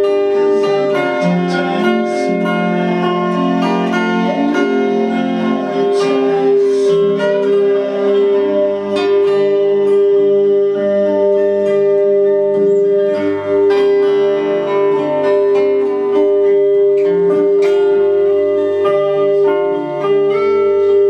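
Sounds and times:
acoustic guitar playing: 0.0s - 21.0s.

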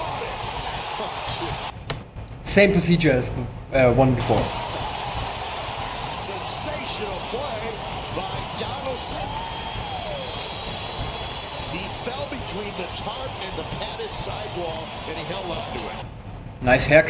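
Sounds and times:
crowd shouts: 0.0s - 1.8s, 4.2s - 16.0s.

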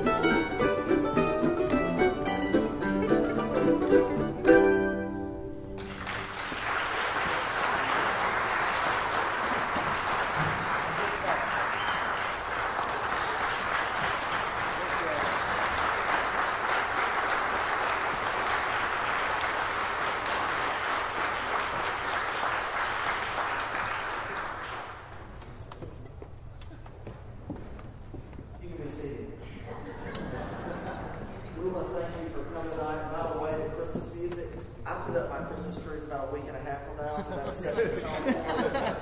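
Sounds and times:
audience applauding: 5.7s - 25.4s.

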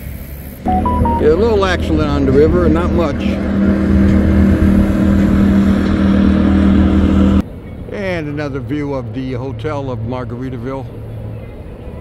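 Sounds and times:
outboard motor running: 0.7s - 7.4s.

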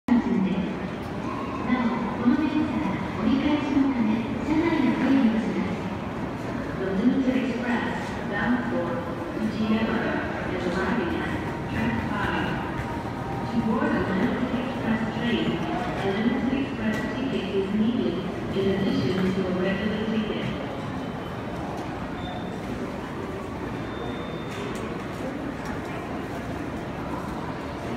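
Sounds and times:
public address announcement: 0.0s - 27.9s
train arriving: 0.1s - 27.9s.

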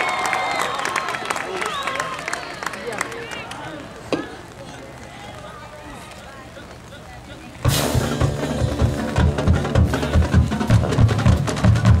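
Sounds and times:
crowd murmur: 0.0s - 12.0s
drumline snare and bass drum: 7.7s - 12.0s
marching band brass: 7.7s - 12.0s.

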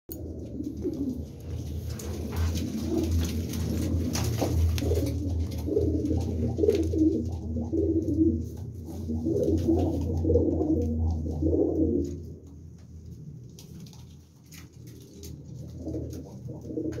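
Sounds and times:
pigeons cooing: 0.1s - 12.6s, 14.6s - 17.0s
steady low hum: 0.1s - 17.0s.

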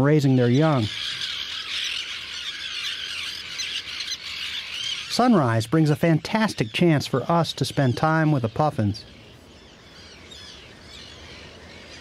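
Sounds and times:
terns shrieking calls: 0.0s - 12.0s.

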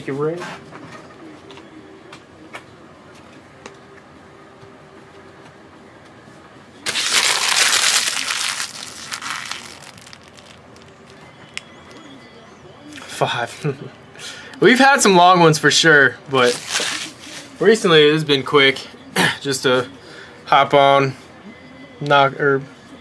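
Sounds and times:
foil wrapper crinkling: 6.9s - 11.6s, 16.4s - 17.2s.

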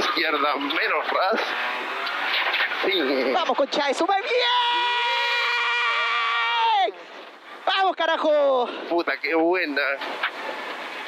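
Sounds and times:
man yelling in celebration: 4.0s - 7.0s.

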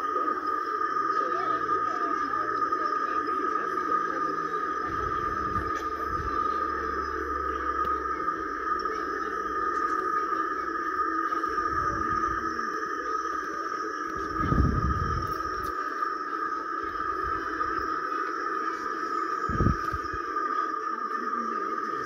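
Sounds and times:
low rumble: 4.7s - 12.6s, 14.1s - 15.7s.

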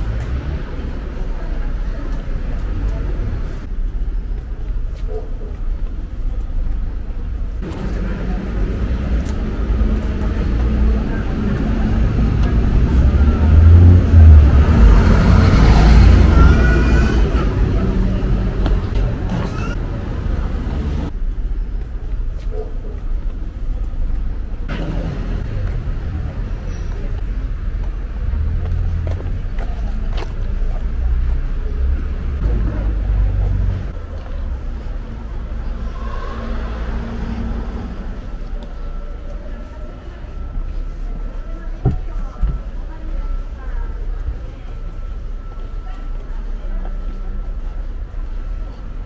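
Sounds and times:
vehicle passing close by: 7.8s - 16.6s.

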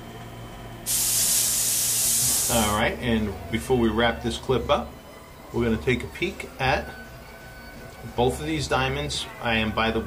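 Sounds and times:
loud steady hiss: 0.8s - 3.0s.

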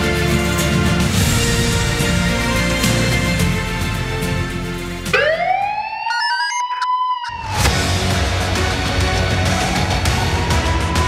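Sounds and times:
television programme music: 0.0s - 5.7s
synthesized tone sweeping upward: 5.2s - 7.6s.

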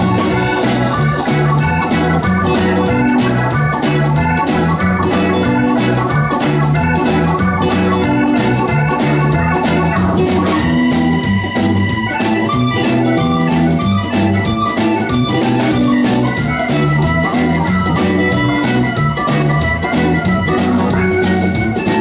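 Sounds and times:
drum kit beat: 0.0s - 22.0s
electric bass: 0.0s - 22.0s
electric guitar: 0.0s - 22.0s
electric organ keyboard: 0.0s - 22.0s.

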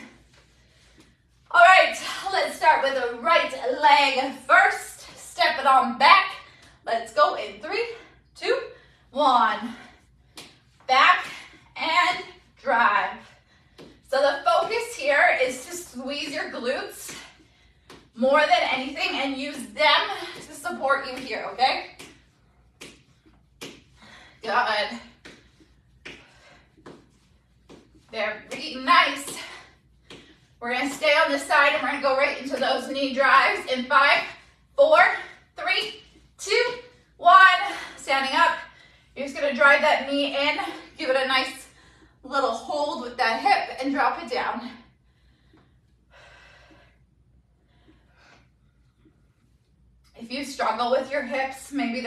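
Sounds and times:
low room hum: 0.0s - 52.0s.

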